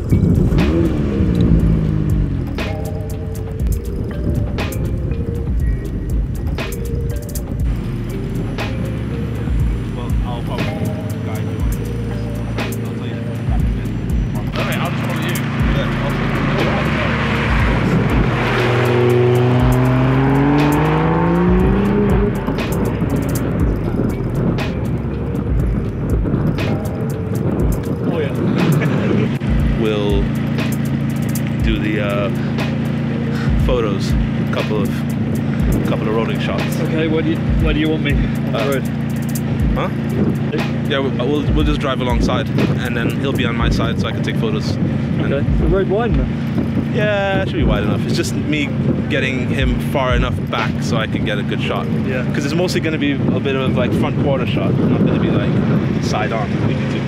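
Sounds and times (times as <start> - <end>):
background music with steady beat: 0.0 - 57.0
car engine accelerating: 0.0 - 57.0.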